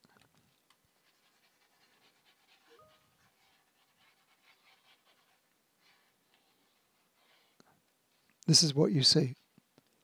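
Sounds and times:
faint rhythmic breathing: 0.0s - 8.4s.

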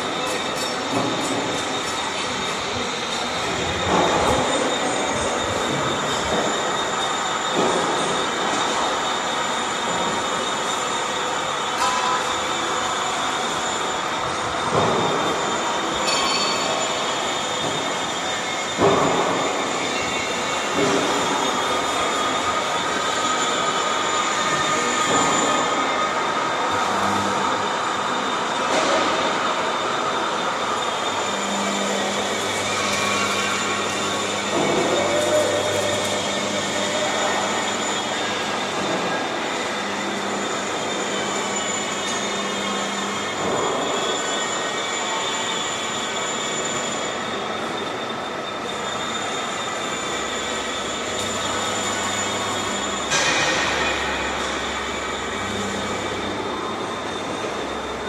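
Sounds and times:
factory machinery whining: 0.0s - 58.0s.

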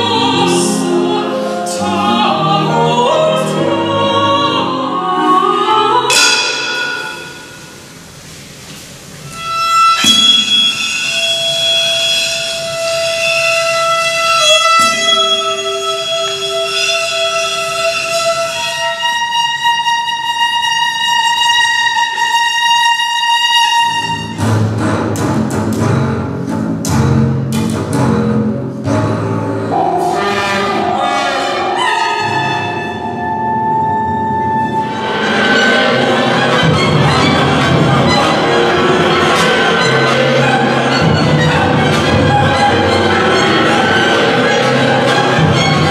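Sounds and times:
chamber music ensemble: 0.0s - 45.9s
quick percussive strikes: 6.1s - 8.3s, 29.6s - 34.0s
held high violin notes: 9.2s - 24.4s, 28.9s - 45.9s.

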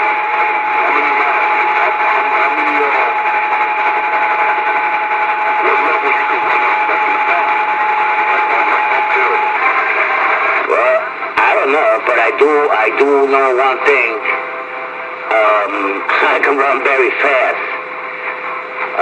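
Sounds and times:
radio static hiss: 0.0s - 19.0s
voices over two-way radio: 0.6s - 3.3s, 5.4s - 9.6s, 10.6s - 14.4s, 15.3s - 17.7s.

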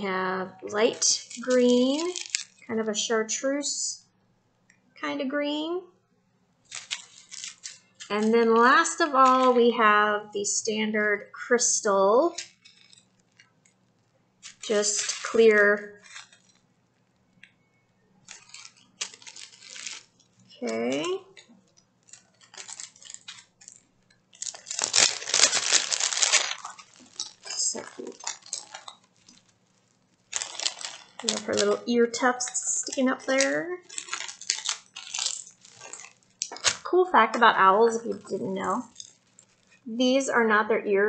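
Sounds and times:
plastic bag crinkling: 0.6s - 2.8s, 6.7s - 10.1s, 12.2s - 39.9s
tiny stones clinking: 0.9s - 2.7s, 18.3s - 29.5s.

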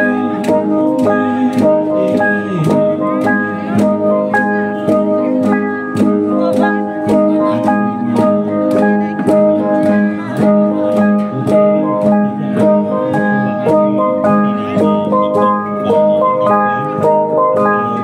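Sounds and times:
gong ensemble playing melody: 0.0s - 18.0s.

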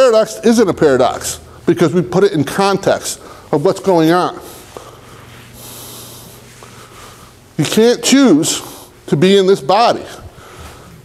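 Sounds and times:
low room hum: 0.0s - 11.0s
man breathing through nose: 4.4s - 7.4s, 10.3s - 11.0s.

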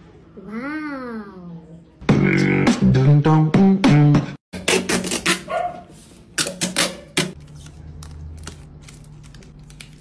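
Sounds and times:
packing tape ripping off roll: 4.6s - 5.5s.

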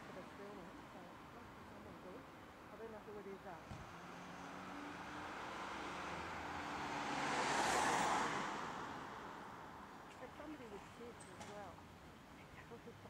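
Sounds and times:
vehicle passing by: 3.6s - 10.0s.

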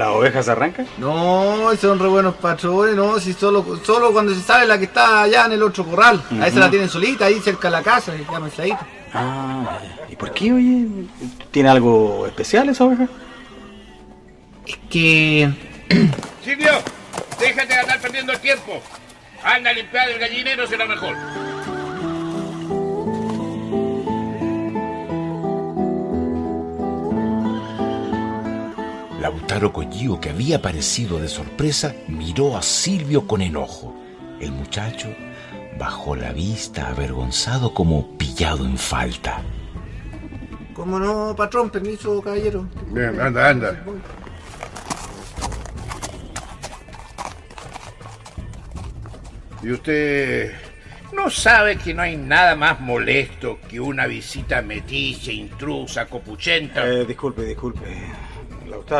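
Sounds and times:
horse whinnying: 2.9s - 25.9s, 27.0s - 33.0s, 38.5s - 41.7s, 43.6s - 51.7s
horse hooves clip-clopping: 15.6s - 19.8s, 44.0s - 52.0s
instrumental music sustained notes: 19.2s - 43.4s.

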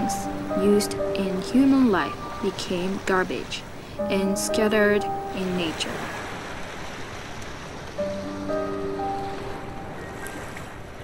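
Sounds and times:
soft background music: 0.0s - 6.2s, 7.5s - 11.0s.

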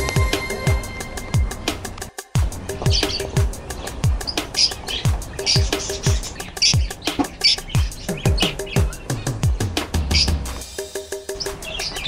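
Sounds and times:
steady kick drum: 0.0s - 1.6s, 2.4s - 4.3s
electronic dance music: 0.0s - 11.8s
ticking hi-hats: 0.0s - 12.0s
parrots chirping: 2.6s - 12.0s.

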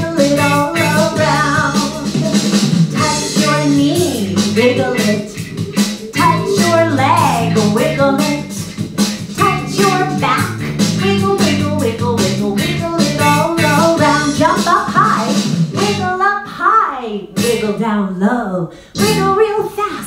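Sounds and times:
children's dance song: 0.0s - 18.3s, 18.9s - 20.0s.

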